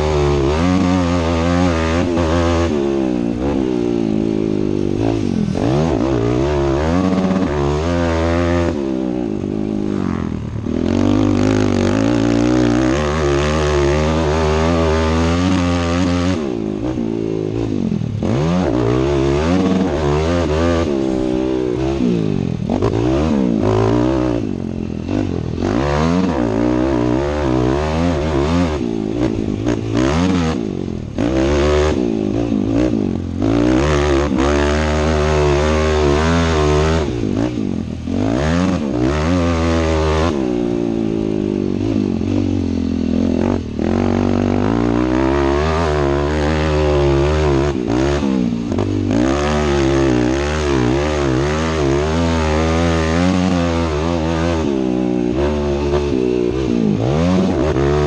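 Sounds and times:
motocross bike engine revving: 0.0s - 58.0s.

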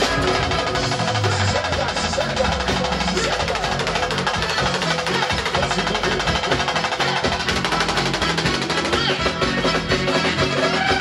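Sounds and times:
band playing: 0.0s - 11.0s
rapid drum percussion: 0.0s - 11.0s.

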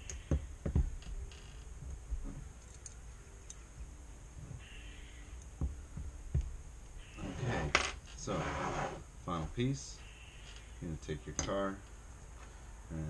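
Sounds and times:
small metal parts clinking: 2.6s - 3.6s.

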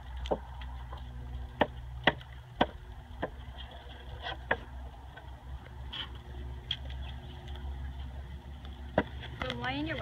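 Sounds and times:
horse hooves clicking: 0.0s - 10.0s
low steady rumble: 0.0s - 10.0s.

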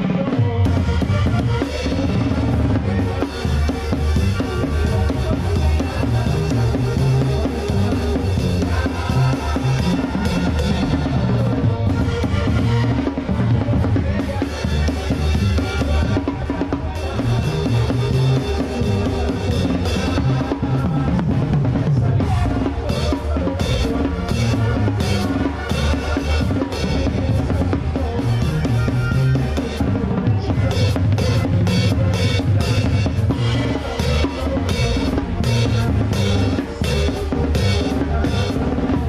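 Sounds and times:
trumpets and trombones: 0.0s - 20.9s
drum kit playing: 0.0s - 39.0s
sousaphone bass line: 0.0s - 39.0s.

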